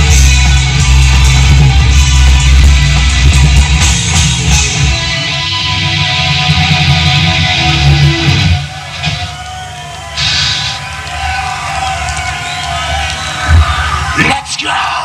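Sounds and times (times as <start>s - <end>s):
sustained guitar tone: 0.0s - 9.2s
metal band playing: 0.0s - 11.4s.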